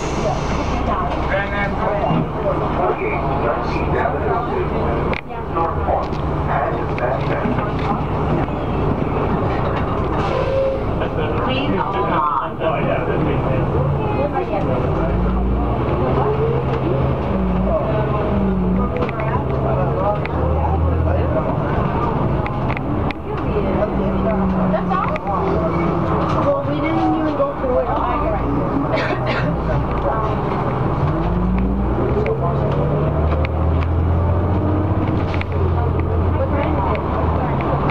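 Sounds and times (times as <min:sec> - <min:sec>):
bus engine droning: 0:00.0 - 0:37.9
indistinct passenger voices: 0:00.0 - 0:37.9
road rumble: 0:00.0 - 0:37.9.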